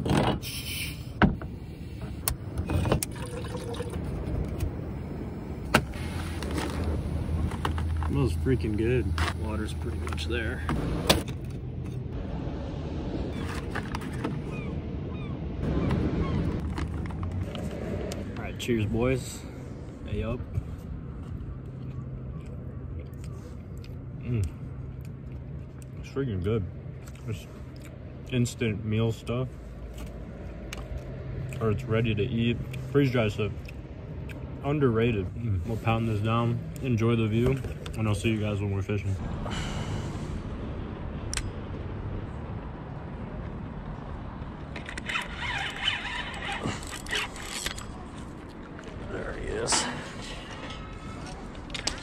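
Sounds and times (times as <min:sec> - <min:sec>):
steady low rumble: 0:00.6 - 0:44.8.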